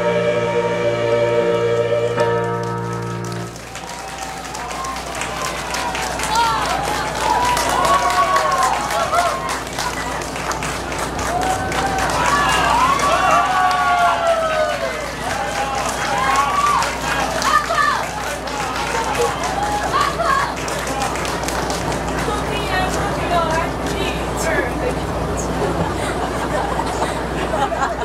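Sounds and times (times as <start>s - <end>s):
audience clapping: 2.3s - 24.8s
people calling out and talking: 15.2s - 27.4s.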